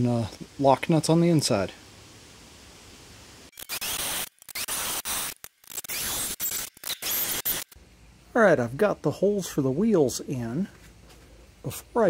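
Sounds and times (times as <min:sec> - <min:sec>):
drill grinding through steel: 0:03.5 - 0:07.8.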